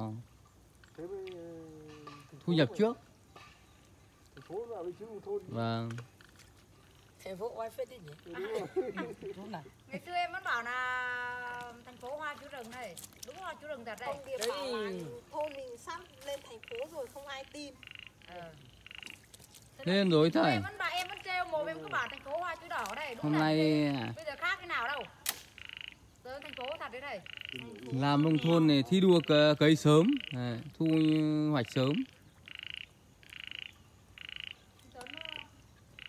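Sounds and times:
frogs calling in pulsed trills: 5.4 - 36.0.

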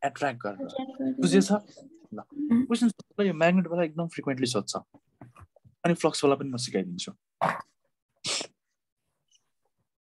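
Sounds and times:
person sneezing: 7.4 - 8.6.

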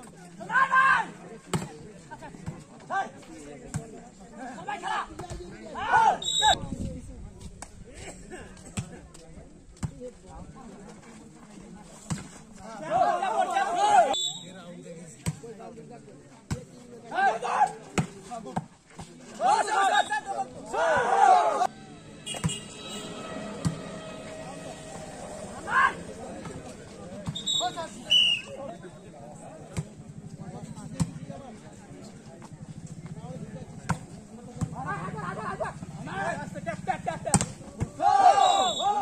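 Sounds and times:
spectators chatting: 0.0 - 39.0
players shouting: 4.6 - 6.6, 12.8 - 14.5, 17.1 - 17.9, 19.4 - 28.7, 37.7 - 39.0.

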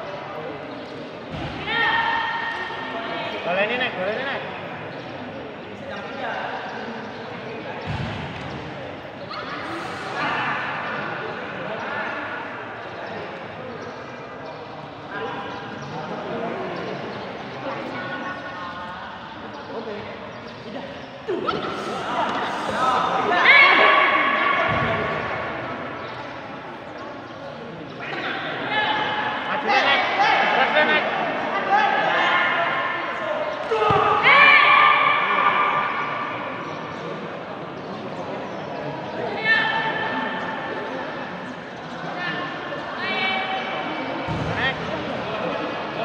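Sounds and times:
onlookers calling out and chattering: 0.0 - 46.0
voices shouting and cheering: 0.0 - 46.0.

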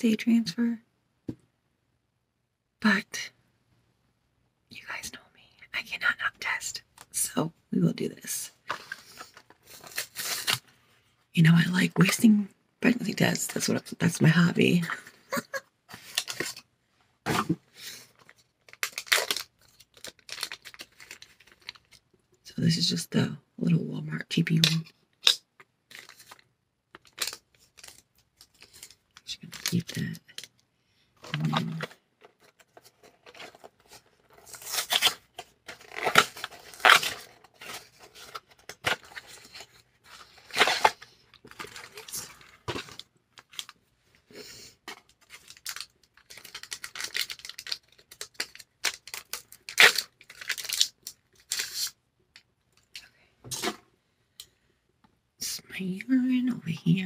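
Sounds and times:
wrappers torn and crinkled: 18.1 - 22.1, 25.2 - 30.5, 31.3 - 43.8, 44.9 - 52.0.

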